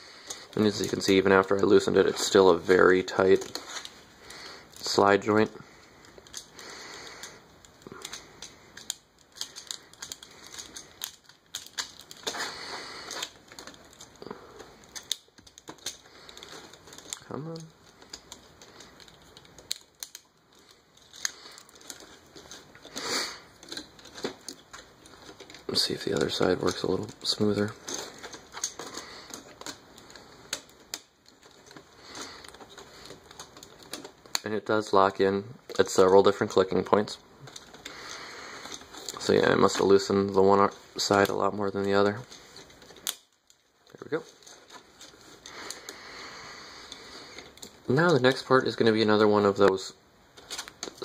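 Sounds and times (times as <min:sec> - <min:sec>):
plastic parts scraping: 0:00.2 - 0:51.0
plastic parts clicking: 0:06.0 - 0:34.5, 0:37.4 - 0:46.0, 0:50.3 - 0:51.0.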